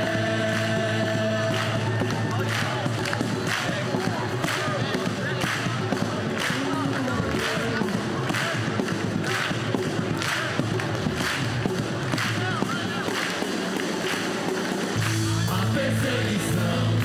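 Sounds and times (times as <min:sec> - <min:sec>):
bass and other instruments: 0:00.0 - 0:17.0
drum kit played with sticks: 0:00.0 - 0:17.0.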